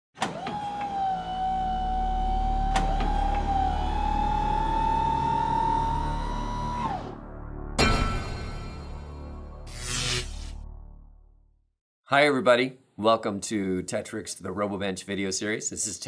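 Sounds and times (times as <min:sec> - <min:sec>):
motor-like whine rising: 0:00.3 - 0:07.4
sharp hit: 0:07.8 - 0:10.6.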